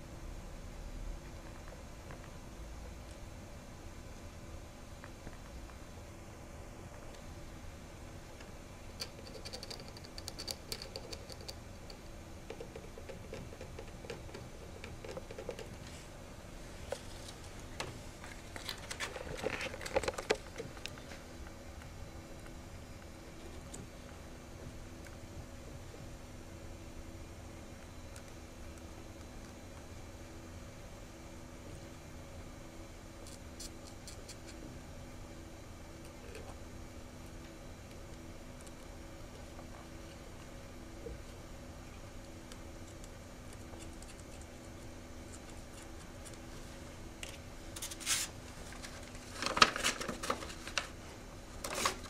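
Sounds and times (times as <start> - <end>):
amplifier hum and hiss: 0.0 - 52.0.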